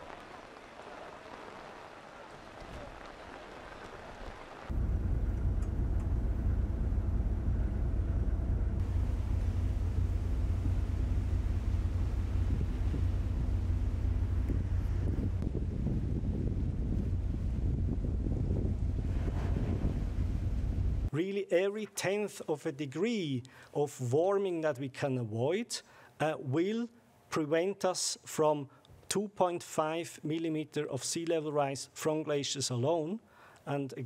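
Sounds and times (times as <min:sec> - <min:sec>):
rain falling: 0:00.0 - 0:07.3, 0:08.8 - 0:15.0
ship engine low rumble: 0:00.0 - 0:21.1
wind on microphone: 0:04.1 - 0:21.1.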